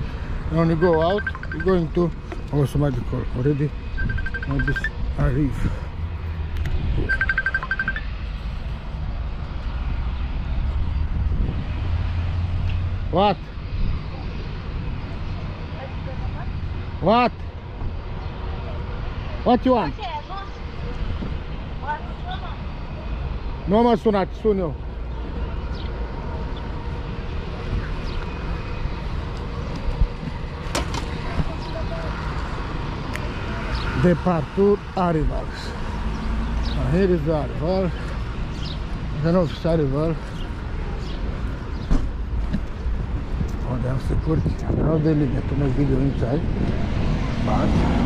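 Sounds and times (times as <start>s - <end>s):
road traffic rumble: 0.0s - 48.0s.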